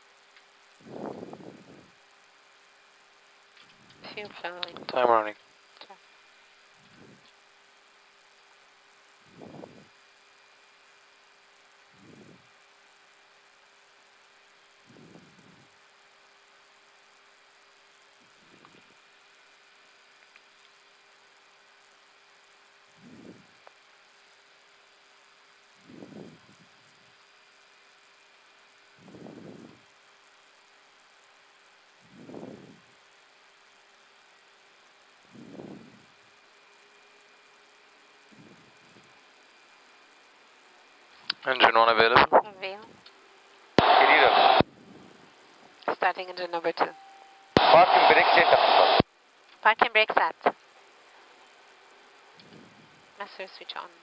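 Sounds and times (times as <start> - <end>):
thin constant tone: 0.0 - 54.0
cockpit hum: 43.8 - 44.6, 45.9 - 49.0.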